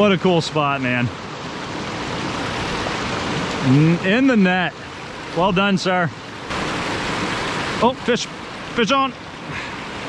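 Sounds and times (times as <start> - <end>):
river rapids rushing: 0.2 - 10.0
man talking: 3.6 - 4.8, 5.4 - 6.2, 7.8 - 9.2.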